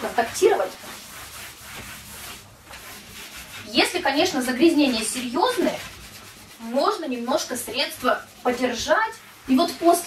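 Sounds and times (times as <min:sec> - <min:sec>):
cloth scrubbing cabinet door: 0:00.0 - 0:10.0.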